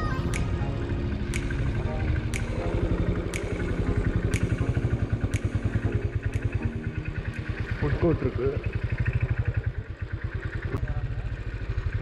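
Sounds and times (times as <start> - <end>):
motorcycle engine running: 0.0 - 12.0
sharp tick: 0.2 - 7.8.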